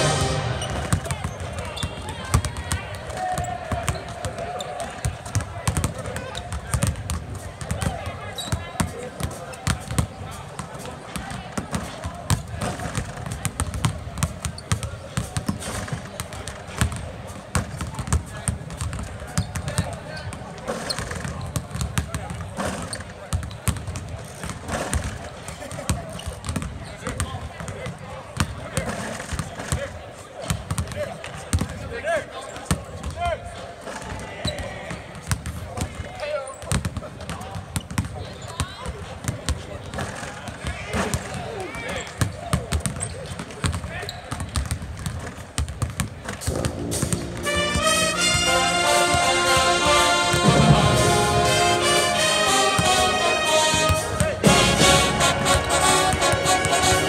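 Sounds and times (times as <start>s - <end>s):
basketballs bouncing on hardwood: 5.0s - 8.0s, 25.7s - 27.8s, 43.6s - 47.2s
indistinct voices: 46.5s - 57.0s.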